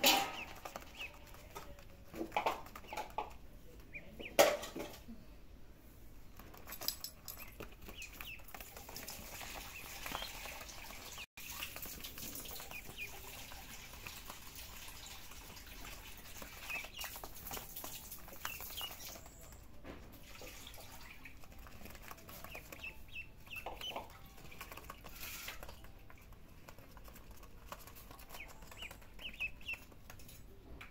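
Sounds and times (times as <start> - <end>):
ducklings peeping: 0.0 - 4.5, 7.3 - 19.7, 20.3 - 30.2
small feet pattering on vinyl: 0.0 - 4.9, 6.3 - 14.7, 15.6 - 30.9.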